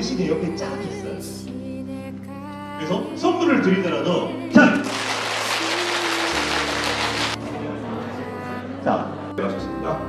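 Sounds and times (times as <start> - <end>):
soft background music: 0.0 - 10.0
audience applauding: 4.8 - 7.4.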